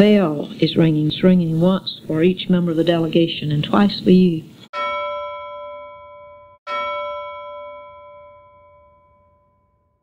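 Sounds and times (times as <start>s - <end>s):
bell ringing: 4.7s - 10.0s.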